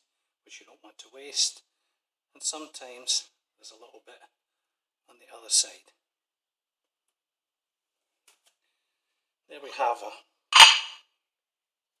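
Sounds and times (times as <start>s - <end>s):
ceramic plate clacking: 10.6s - 11.0s.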